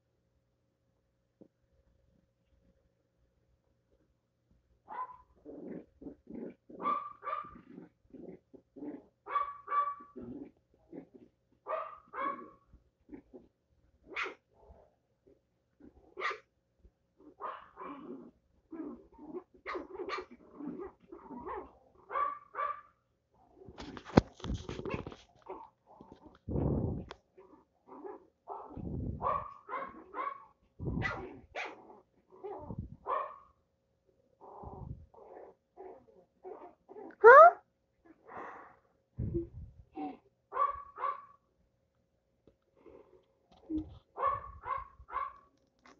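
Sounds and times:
small dogs barking and growling: 0:04.9 - 0:16.5, 0:17.2 - 0:33.6, 0:34.4 - 0:41.4, 0:42.8 - 0:45.9.

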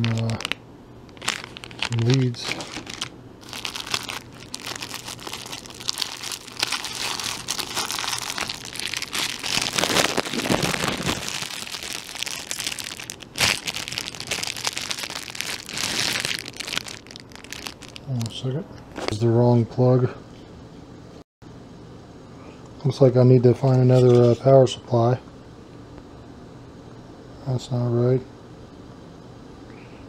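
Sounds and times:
plastic bags crinkling: 0:00.0 - 0:18.4.

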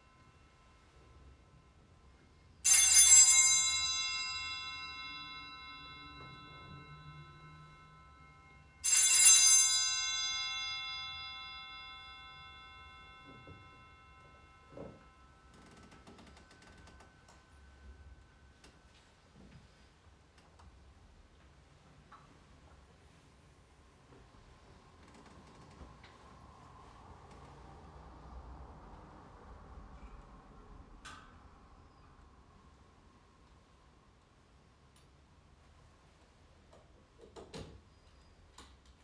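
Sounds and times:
altar bells ringing: 0:00.0 - 0:19.8.

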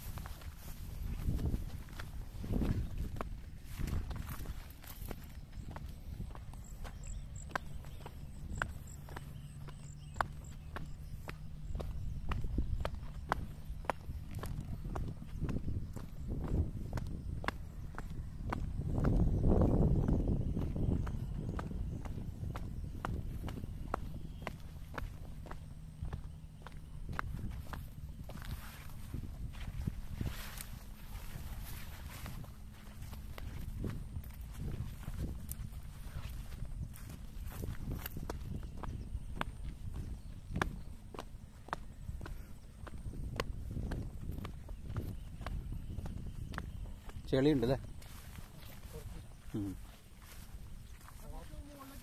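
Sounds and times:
footsteps on rock and grass: 0:00.0 - 0:52.0.

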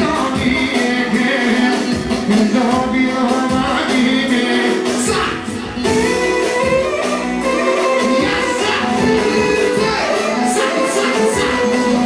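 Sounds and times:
keyboard: 0:00.0 - 0:12.0
live band playing dance music: 0:00.0 - 0:12.0
person singing: 0:00.0 - 0:12.0.

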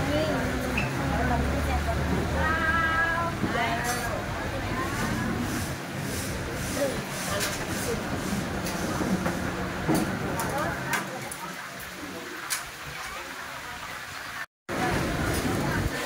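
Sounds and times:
hubbub of people talking: 0:00.0 - 0:14.1, 0:14.7 - 0:16.0.

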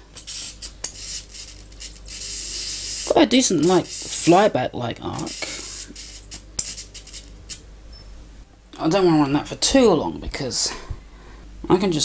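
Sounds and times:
electric arc hissing and crackling: 0:00.0 - 0:07.7
low steady hum: 0:00.0 - 0:12.0.

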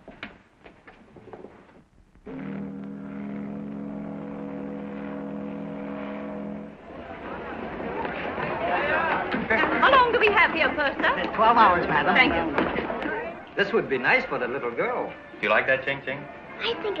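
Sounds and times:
ship's steam whistle blast: 0:02.3 - 0:06.9
crowd chatter: 0:06.8 - 0:17.0.

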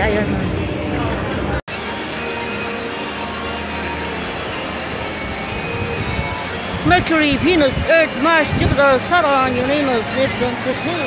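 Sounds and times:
spinner ride mechanical hum: 0:00.0 - 0:11.0.

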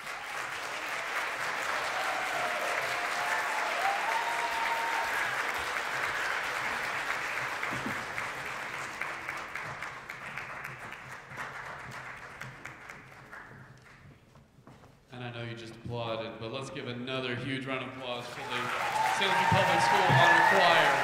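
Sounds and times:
audience clapping: 0:00.0 - 0:14.2, 0:18.2 - 0:21.0.

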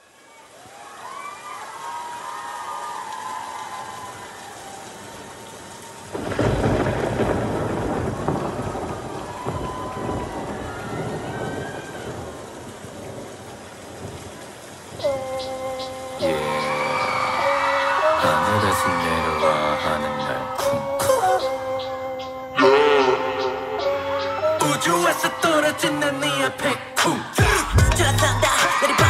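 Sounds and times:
steady rain: 0:00.0 - 0:29.0
thunderclap rumbling: 0:04.9 - 0:22.0, 0:27.4 - 0:29.0
synth chords: 0:19.8 - 0:28.7.

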